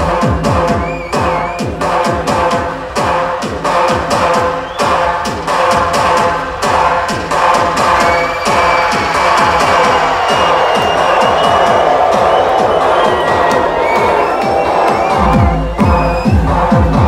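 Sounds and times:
electronic dance music: 0.0s - 17.0s
crowd cheering: 0.1s - 17.0s.

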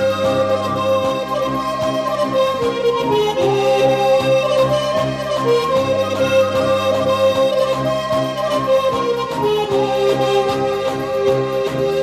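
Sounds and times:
instrumental music: 0.0s - 12.0s.

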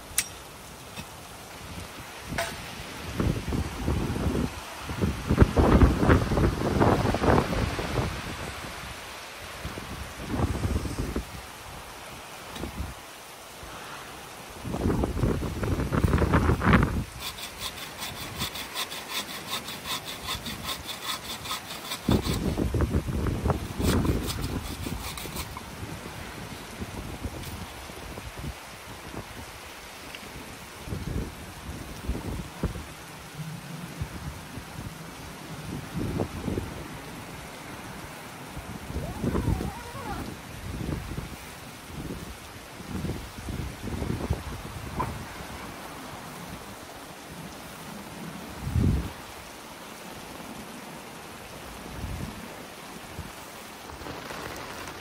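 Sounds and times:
dry branches being handled: 16.0s - 22.7s, 23.8s - 25.8s, 53.8s - 55.0s
bow saw cutting a branch: 16.9s - 22.6s, 23.8s - 25.7s.

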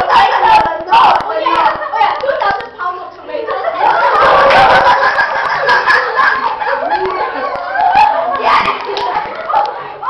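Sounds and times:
girls talking over one another: 0.0s - 10.0s.

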